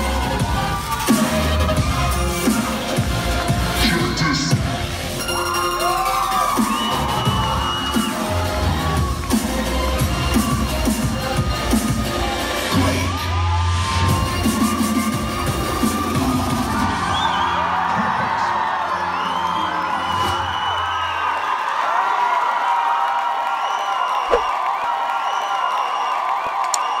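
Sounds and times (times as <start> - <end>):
hip-hop music with heavy bass: 0.0 - 17.1
audience cheering and whooping: 0.0 - 27.0.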